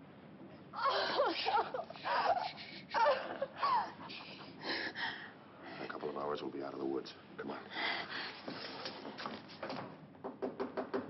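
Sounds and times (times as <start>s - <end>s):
rapid sharp knocks: 10.2s - 11.0s.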